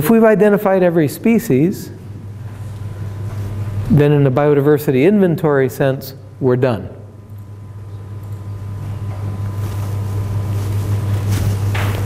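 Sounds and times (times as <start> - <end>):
low electrical hum: 0.0 - 12.0
microphone rustling: 9.3 - 12.0.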